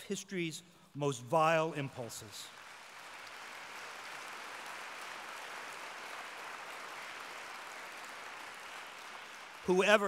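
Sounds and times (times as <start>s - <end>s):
audience applauding: 2.5s - 10.0s.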